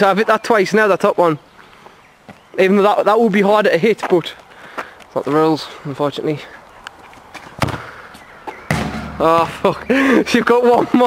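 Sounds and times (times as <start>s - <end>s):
loud bang: 8.7s - 9.6s
sharp knock: 8.7s - 9.6s.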